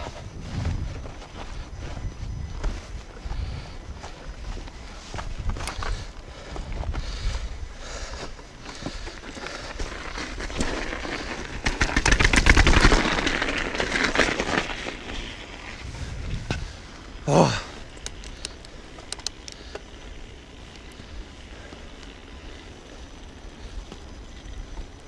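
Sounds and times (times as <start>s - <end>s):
bike rattling: 0.0s - 25.0s
bike tyres crunching over snow: 0.0s - 25.0s.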